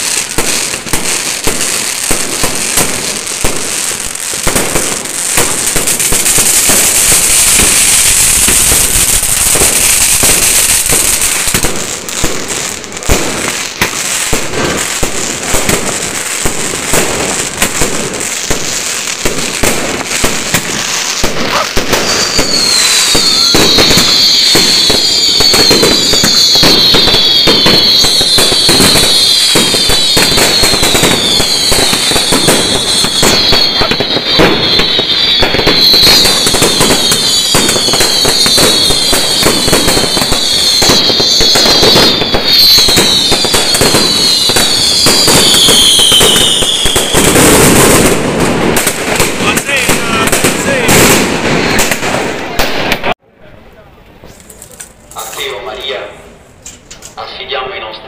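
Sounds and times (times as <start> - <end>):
fireworks crackling and popping: 0.0 - 53.2, 54.2 - 57.6
falling whistles: 21.9 - 48.0.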